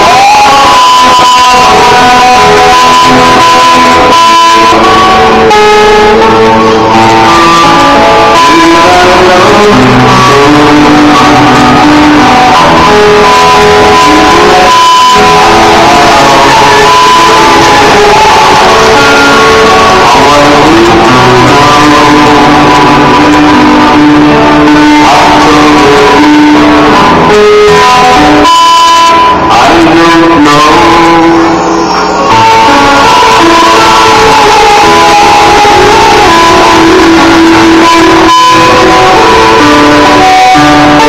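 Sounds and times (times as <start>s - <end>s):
guitar playing: 0.0s - 41.0s
man singing into a microphone: 0.0s - 41.0s.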